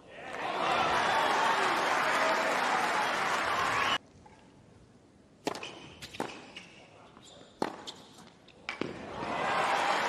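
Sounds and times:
racket hitting tennis ball: 5.4s - 6.6s, 7.6s - 8.1s
shoe squeaks on hard court: 5.6s - 8.3s.

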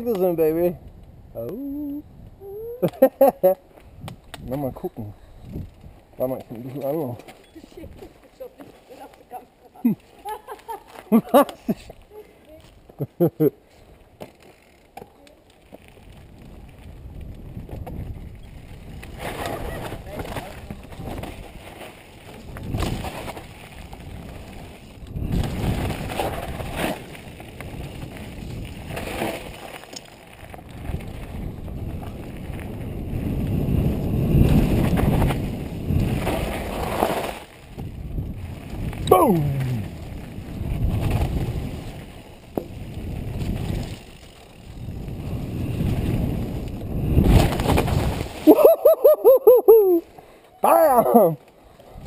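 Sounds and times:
wind buffeting microphone: 0.0s - 2.8s, 3.8s - 8.3s, 16.0s - 29.7s, 30.4s - 48.5s
bike tyres rattling over dirt: 3.0s - 50.1s.

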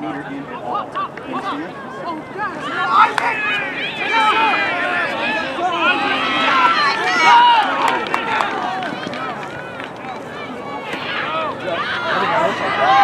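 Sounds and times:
many voices shouting: 0.7s - 13.0s.

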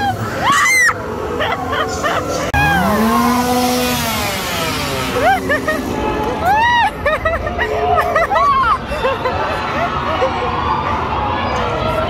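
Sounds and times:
high-pitched voices crying out: 0.0s - 3.4s, 5.2s - 10.8s
small engine winding down: 2.4s - 6.7s.

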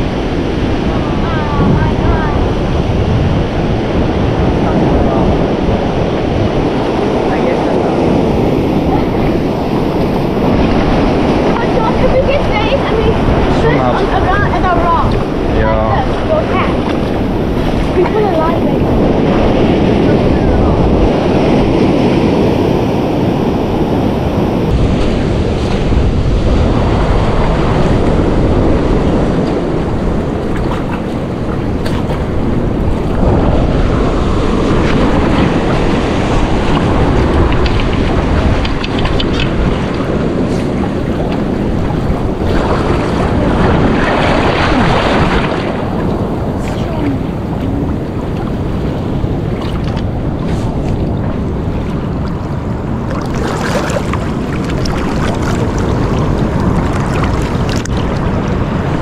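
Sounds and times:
people wading through water: 0.0s - 59.0s
surf breaking on rocks: 0.0s - 59.0s
wind buffeting microphone: 0.0s - 59.0s.

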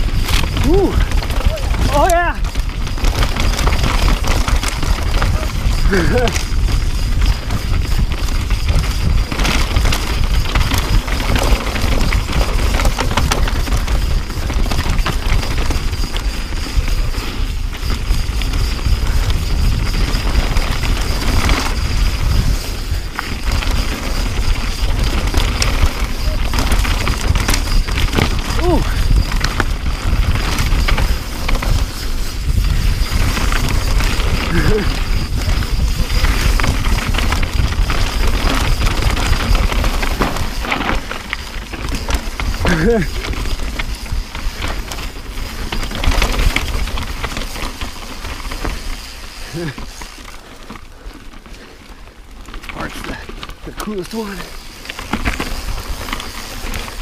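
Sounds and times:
bike rattling over bumps: 0.0s - 57.0s
tyres crunching over stones: 0.0s - 57.0s
wind rumble on microphone: 0.0s - 57.0s.

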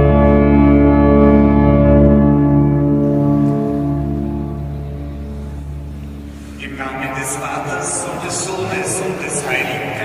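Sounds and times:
pipe organ chord: 0.0s - 10.0s.

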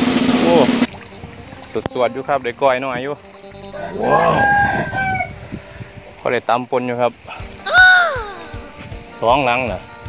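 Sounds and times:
rooster crowing: 3.7s - 5.4s.

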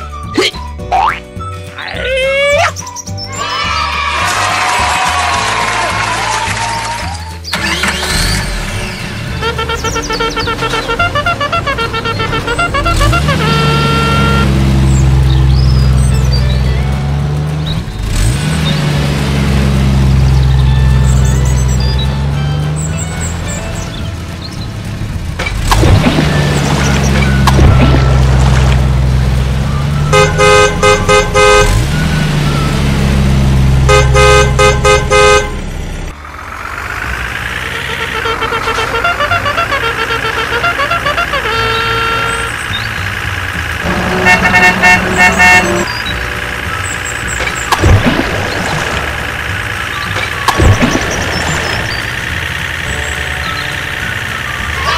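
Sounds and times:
horn toots: 7.5s - 15.1s, 30.0s - 33.0s, 33.6s - 35.7s, 37.5s - 43.1s, 43.8s - 52.0s
cartoon engine drone: 9.4s - 14.7s, 43.8s - 46.2s, 47.8s - 54.9s.

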